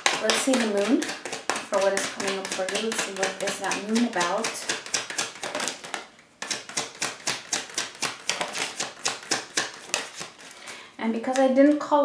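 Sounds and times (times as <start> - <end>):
cards being shuffled: 0.0 - 11.5.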